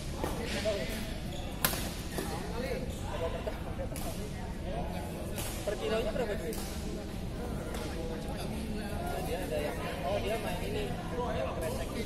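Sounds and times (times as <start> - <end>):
people talking: 0.0 - 12.0
racket hitting shuttlecock: 1.6 - 2.0.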